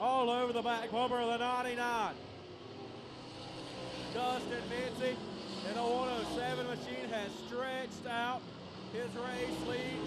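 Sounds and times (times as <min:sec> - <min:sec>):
race car engines droning: 0:00.0 - 0:10.0.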